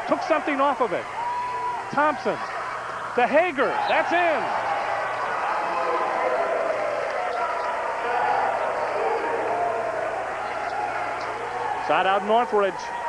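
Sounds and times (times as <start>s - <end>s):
crowd talking hubbub: 0.0s - 13.0s.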